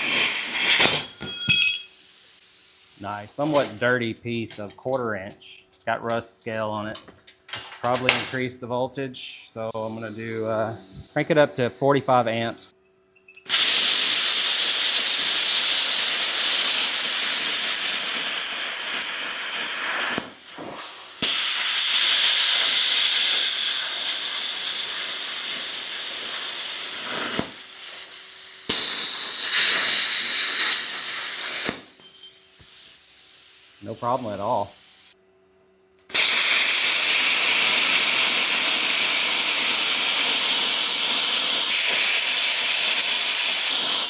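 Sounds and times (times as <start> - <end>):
plasma cutter hissing: 0.0 - 3.7, 9.7 - 12.7, 13.5 - 35.2, 36.1 - 44.0.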